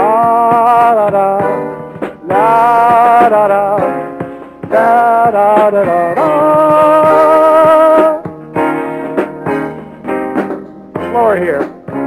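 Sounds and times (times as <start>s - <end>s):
guitar and keyboard chords ringing: 0.0s - 12.0s.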